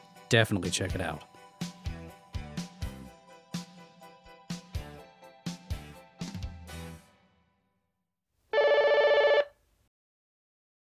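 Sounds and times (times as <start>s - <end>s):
telephone ringing: 8.6s - 9.5s.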